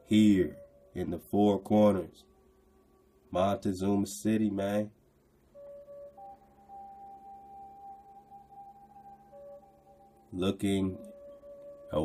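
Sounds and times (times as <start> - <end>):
soft held music tones: 0.0 - 12.0.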